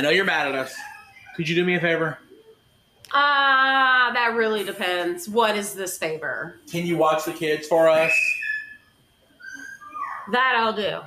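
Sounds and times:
high whistle notes: 0:07.7 - 0:10.1.

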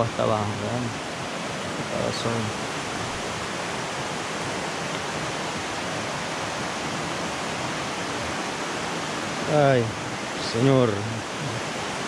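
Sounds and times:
water rushing over rocks: 0:00.0 - 0:12.0.

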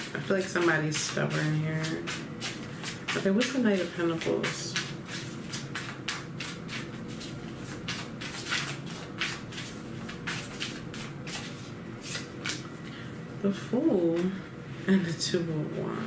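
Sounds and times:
cards shuffling: 0:01.0 - 0:12.7.

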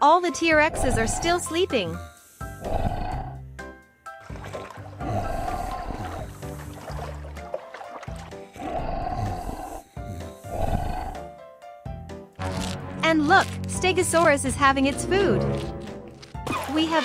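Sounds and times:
background music: 0:00.0 - 0:17.0
cartoon dinosaur snoring: 0:00.7 - 0:01.6, 0:02.4 - 0:03.5, 0:05.0 - 0:06.4, 0:08.5 - 0:11.4.

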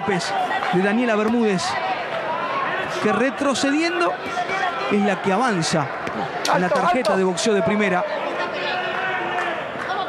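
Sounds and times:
murmur of spectators: 0:00.0 - 0:10.0.

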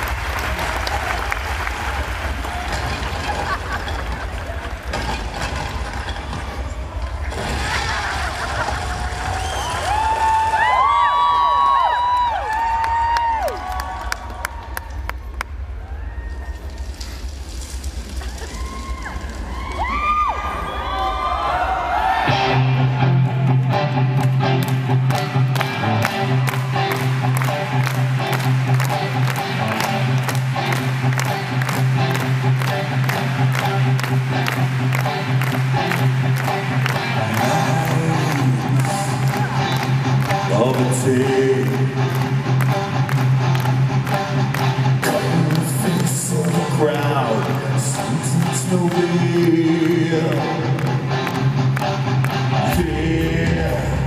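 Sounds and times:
crowd cheering: 0:00.0 - 0:17.2, 0:18.1 - 0:54.0
bending electric guitar notes: 0:22.3 - 0:54.0.

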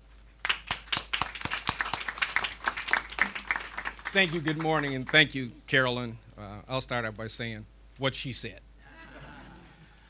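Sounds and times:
people applauding: 0:00.4 - 0:05.4.

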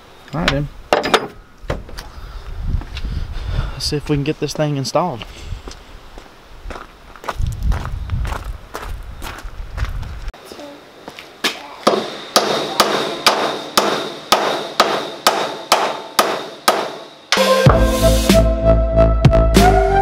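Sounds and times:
hammer blows on steel: 0:11.5 - 0:18.6.

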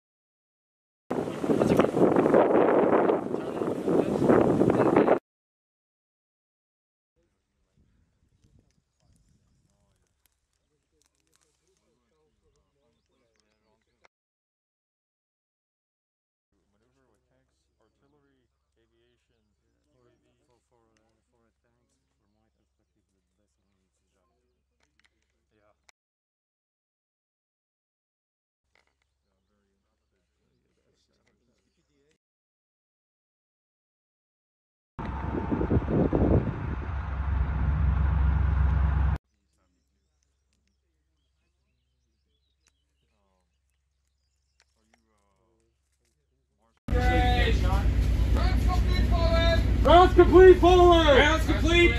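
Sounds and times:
wind buffeting microphone: 0:01.1 - 0:05.2, 0:35.0 - 0:39.1
low rumble: 0:35.0 - 0:39.2, 0:46.9 - 0:51.9
distant indistinct voices: 0:46.9 - 0:51.9.

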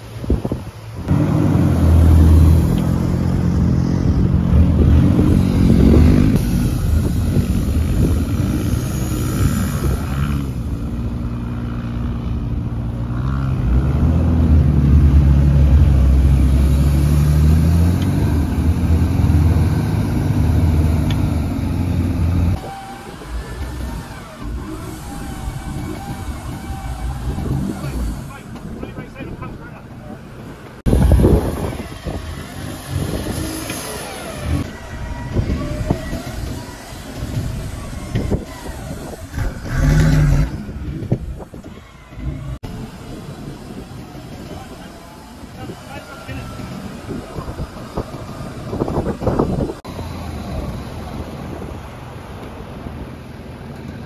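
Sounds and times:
engine revving hard: 0:01.1 - 0:10.8, 0:13.0 - 0:28.5, 0:30.9 - 0:41.5
wheel spinning in sand: 0:01.1 - 0:12.0, 0:14.8 - 0:29.2, 0:30.9 - 0:51.8.

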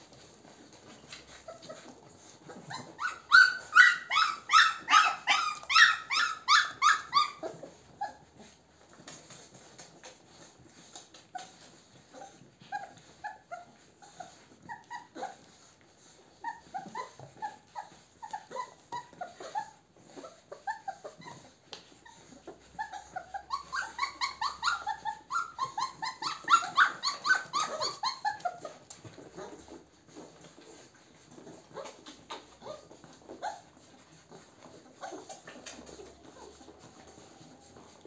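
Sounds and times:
puppies whining and yipping: 0:00.0 - 0:38.0.

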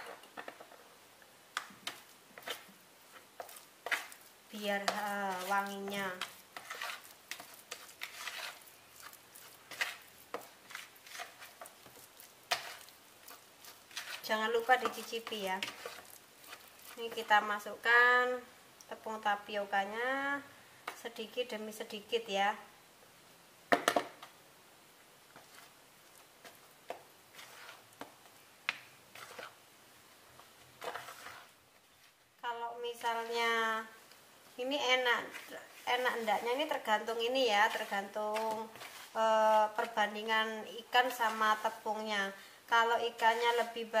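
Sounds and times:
hand squishing fish paste: 0:01.6 - 0:17.2
hand squishing paste: 0:35.3 - 0:40.0.

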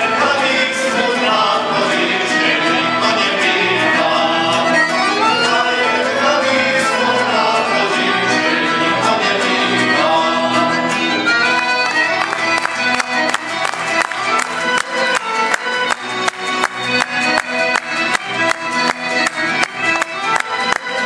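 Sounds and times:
accordion: 0:00.0 - 0:21.0
guitar: 0:00.0 - 0:21.0
keyboard: 0:00.0 - 0:21.0
plucked string instruments: 0:00.0 - 0:21.0.

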